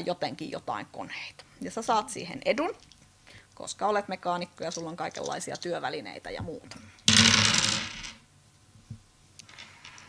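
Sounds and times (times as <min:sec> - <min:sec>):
dice clattering on tabletop: 0:07.1 - 0:08.2, 0:09.5 - 0:10.0.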